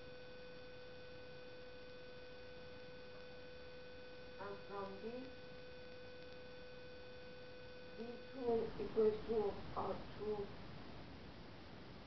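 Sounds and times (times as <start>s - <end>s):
low hiss: 0.0s - 12.0s
steady electrical hum: 0.0s - 12.0s.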